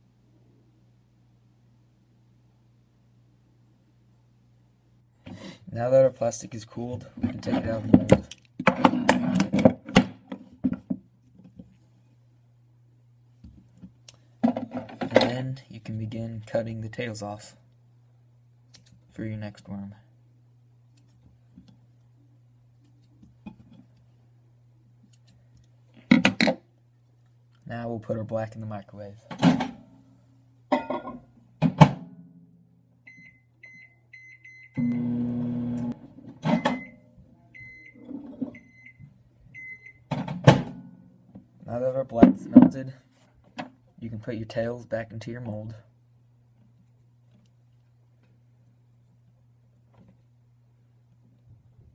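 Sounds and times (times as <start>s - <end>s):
faint low hum: 0.0s - 51.9s.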